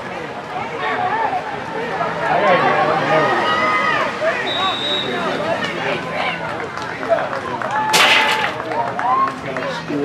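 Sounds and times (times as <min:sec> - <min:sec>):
crowd voices chattering and calling: 0:00.0 - 0:10.0.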